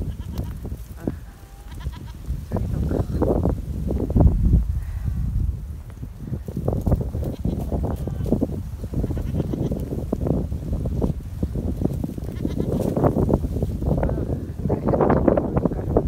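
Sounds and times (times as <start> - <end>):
goats bleating: 0.0 - 3.3, 7.2 - 8.4, 9.0 - 9.8, 12.2 - 12.8.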